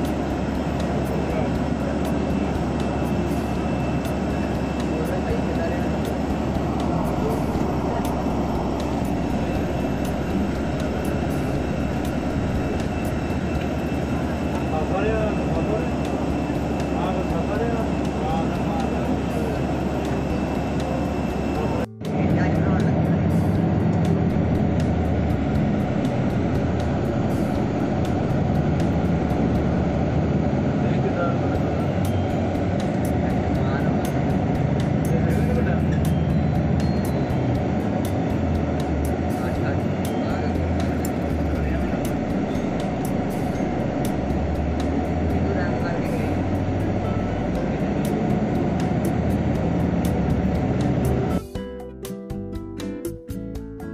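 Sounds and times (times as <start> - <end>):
humming engine: 0.0 - 51.5
aircraft and ground equipment noise: 0.0 - 51.6
high whine: 0.0 - 51.6.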